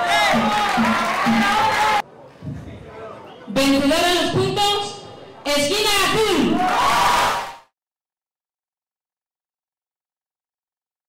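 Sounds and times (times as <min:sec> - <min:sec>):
crowd cheering: 0:00.0 - 0:02.1, 0:06.0 - 0:07.7.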